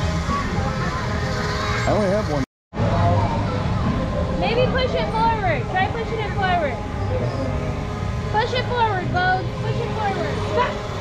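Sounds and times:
children calling and squealing: 0.0 - 2.0, 2.8 - 7.7
ride machinery humming: 0.0 - 11.0.

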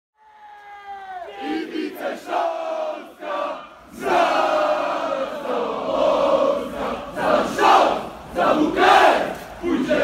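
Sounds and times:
massed shouting: 0.2 - 10.0
crowd chanting in unison: 1.3 - 10.0.

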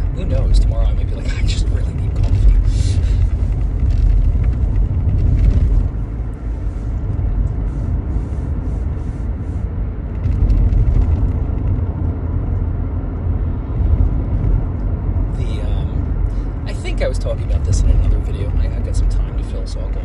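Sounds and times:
car cabin road and engine rumble: 0.0 - 20.0.

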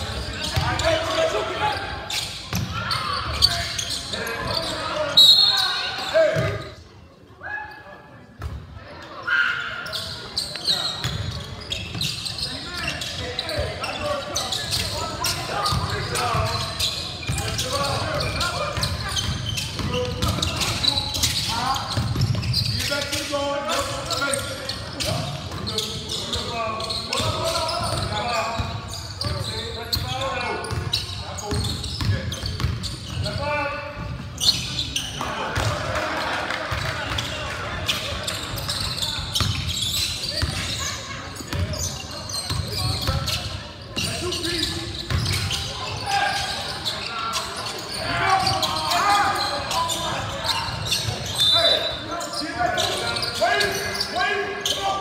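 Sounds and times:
sneakers squeaking: 0.0 - 55.0.

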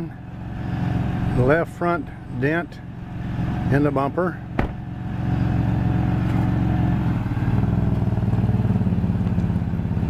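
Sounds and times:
car engine running at low revs: 0.0 - 10.0.

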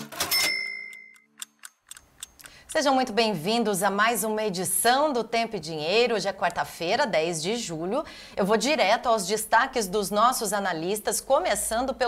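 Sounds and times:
clock ticking: 0.8 - 3.4.

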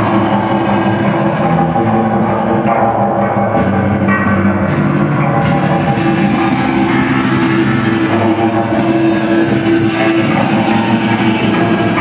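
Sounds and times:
electric guitars playing: 0.0 - 12.0.

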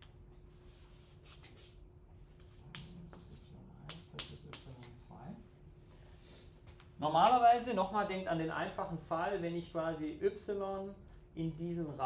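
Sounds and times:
drawing on a board: 0.6 - 5.0.

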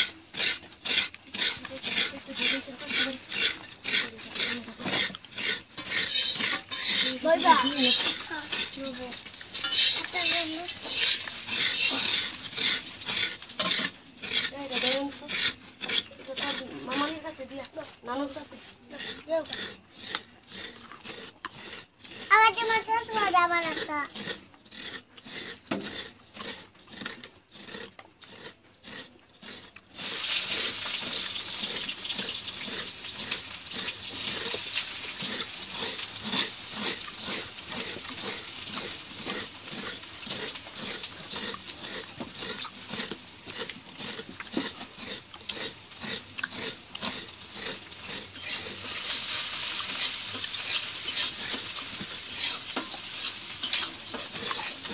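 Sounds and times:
spoon scraping coconut shell: 0.0 - 54.9.

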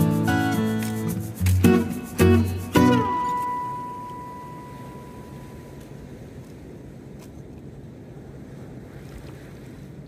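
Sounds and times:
surf washing: 0.0 - 10.0
wind rumbling on microphone: 0.0 - 10.0.

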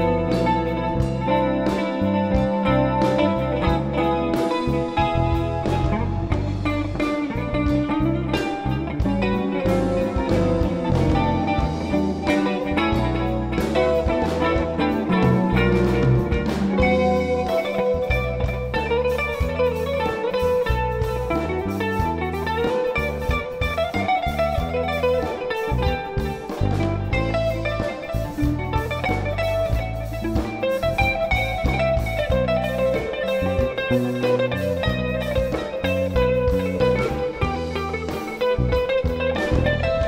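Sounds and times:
drum kit: 0.0 - 40.0
electric guitar lead line: 0.0 - 40.0
walking electric bass: 0.0 - 40.0.

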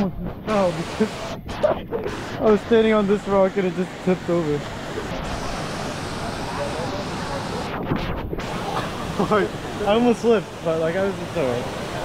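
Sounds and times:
water rushing: 0.0 - 12.0.

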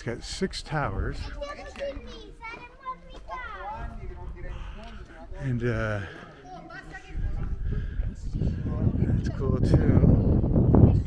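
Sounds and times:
young people chatting and calling out: 0.0 - 11.0
wind rumbling on microphone: 6.9 - 11.0.

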